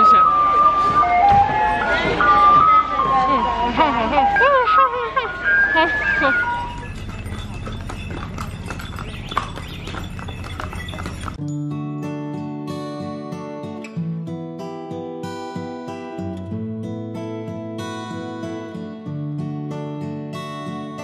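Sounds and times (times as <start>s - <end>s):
voices: 0.0s - 11.4s
hooves clip-clopping on stone: 6.3s - 11.4s.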